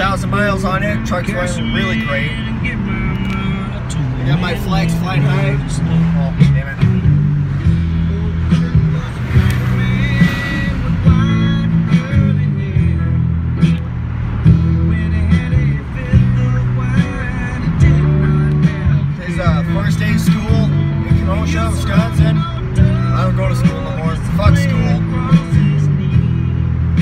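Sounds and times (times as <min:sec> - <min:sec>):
music with singing on car stereo: 0:00.0 - 0:27.0.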